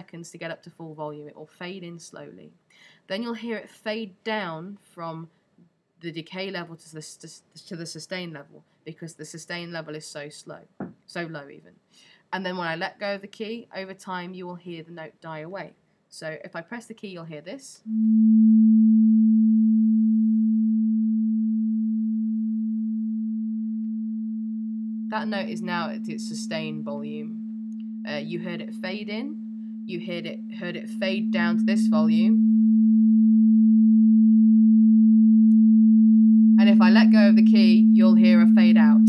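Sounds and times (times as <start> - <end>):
steady low synthesizer tone: 17.9 - 39.0.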